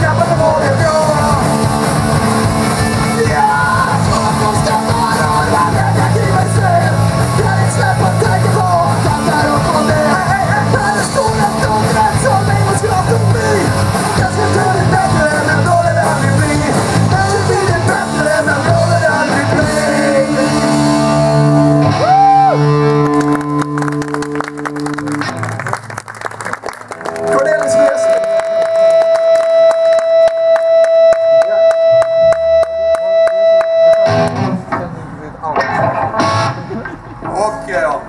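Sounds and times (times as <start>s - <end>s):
live rock band: 0.0s - 38.0s
hand clapping: 22.8s - 34.4s.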